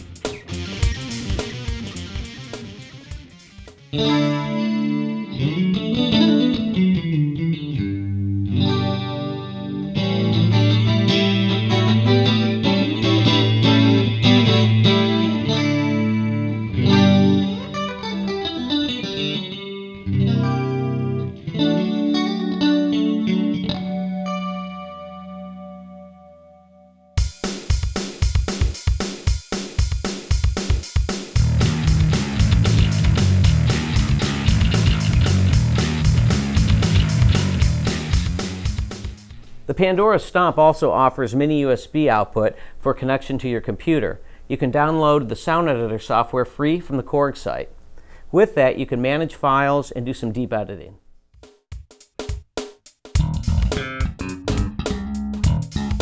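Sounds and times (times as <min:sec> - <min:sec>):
drum machine beat: 0:00.0 - 0:04.6, 0:27.2 - 0:39.6, 0:51.3 - 0:56.0
electric guitar chord: 0:00.0 - 0:26.9, 0:31.4 - 0:39.4
electric bass riff: 0:00.0 - 0:28.4, 0:30.5 - 0:39.9, 0:53.2 - 0:56.0.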